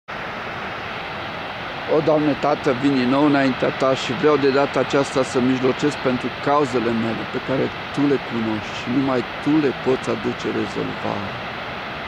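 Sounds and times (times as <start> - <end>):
waterfall roaring: 0.1 - 12.0.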